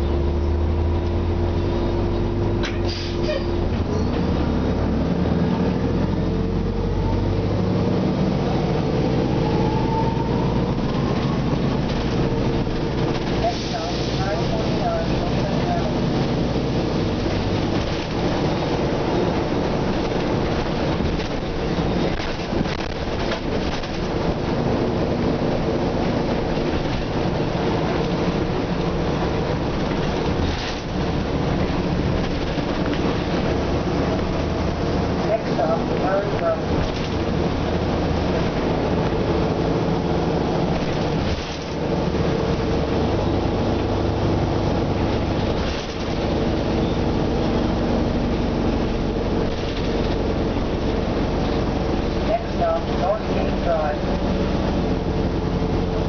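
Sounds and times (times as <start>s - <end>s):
bus diesel engine: 0.0s - 56.0s
rising whine: 4.0s - 12.2s
body rattles and knocks: 17.0s - 39.3s, 40.0s - 43.2s, 44.6s - 53.0s.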